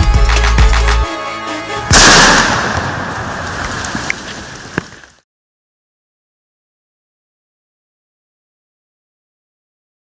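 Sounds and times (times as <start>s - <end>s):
loud shotgun blast: 1.9s - 3.4s.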